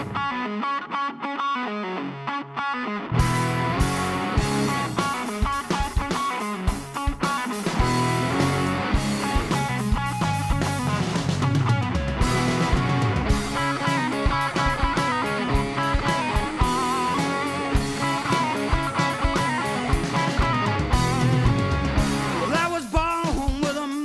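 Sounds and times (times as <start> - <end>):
drum kit: 0.0 - 0.3, 3.2 - 24.0
electric guitars: 0.0 - 24.0.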